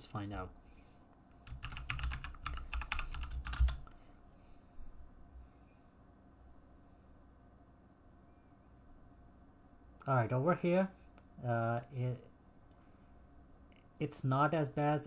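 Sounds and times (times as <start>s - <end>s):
typing on computer keyboard: 1.4s - 4.0s.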